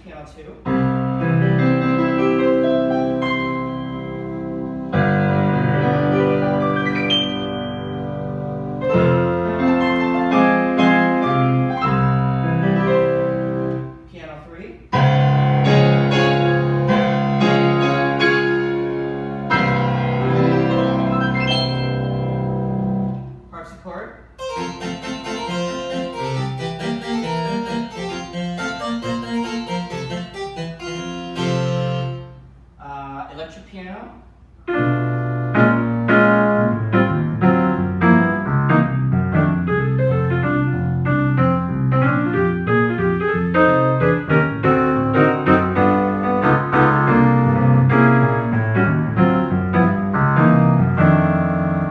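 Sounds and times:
digital piano playing: 0.7s - 14.1s, 14.9s - 23.4s, 24.4s - 32.4s, 34.7s - 51.9s.

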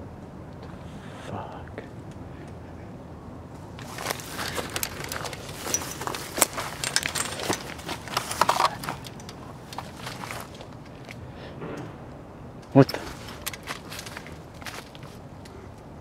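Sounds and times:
footsteps through dry leaves: 3.8s - 9.0s
camera jostling: 3.8s - 11.2s, 13.0s - 15.3s.

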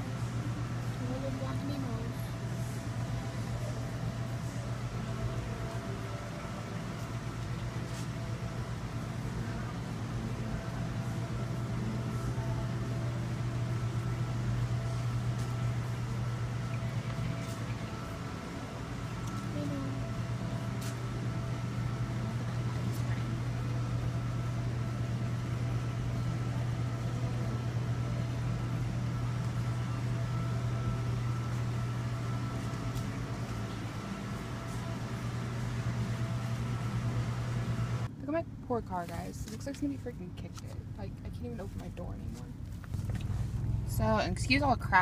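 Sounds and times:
aquarium pumps humming: 0.0s - 42.2s, 42.8s - 45.0s.

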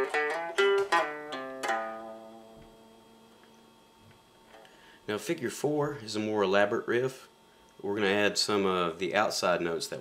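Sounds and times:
guitar blues riff: 0.0s - 2.9s.

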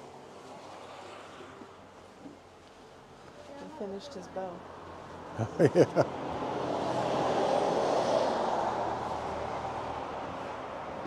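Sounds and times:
vehicle passing on road: 0.0s - 11.0s.

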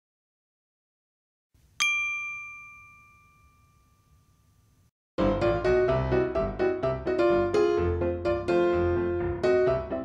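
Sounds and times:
bright bell-like ding: 1.8s - 4.8s.

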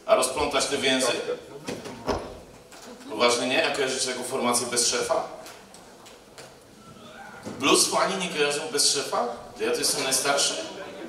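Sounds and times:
man speaking into microphone: 0.0s - 1.7s, 3.1s - 5.4s, 7.5s - 11.0s.

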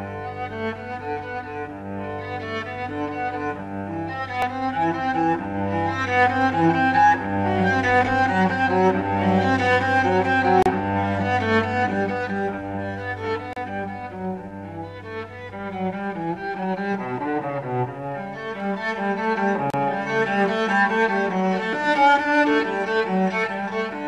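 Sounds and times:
bowed cello melody: 0.0s - 24.0s.

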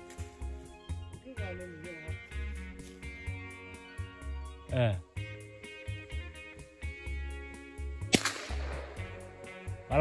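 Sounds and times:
music with steady beat: 0.0s - 4.6s, 5.2s - 10.0s.

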